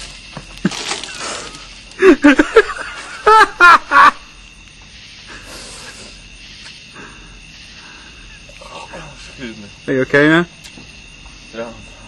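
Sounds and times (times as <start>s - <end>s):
fizzing hiss: 5.3s - 6.8s
spitting: 5.3s - 6.8s.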